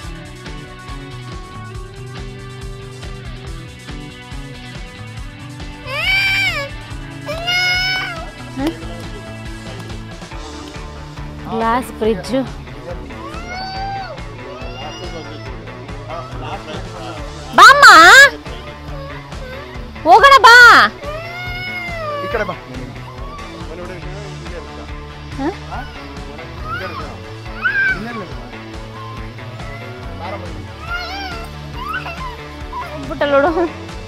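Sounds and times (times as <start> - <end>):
background music: 0.0 - 34.0
person squealing: 5.9 - 6.7, 7.3 - 8.3, 17.6 - 18.3, 26.6 - 28.3, 30.8 - 33.0
child whining cry: 5.9 - 8.4, 13.2 - 16.4, 17.6 - 23.6, 25.4 - 28.3, 28.9 - 33.1.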